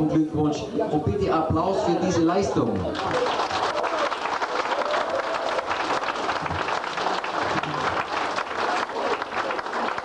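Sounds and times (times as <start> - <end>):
audience applauding: 2.7 - 10.0.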